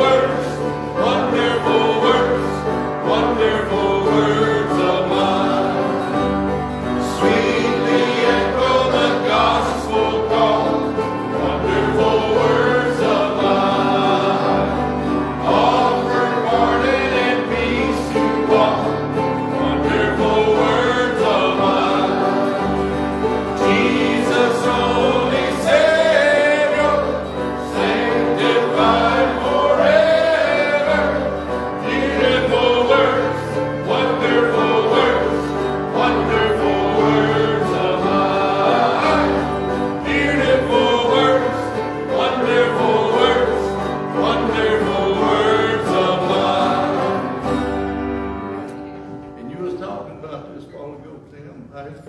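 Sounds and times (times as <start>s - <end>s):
congregation singing a hymn: 0.0s - 49.8s
instrumental accompaniment: 0.0s - 50.6s.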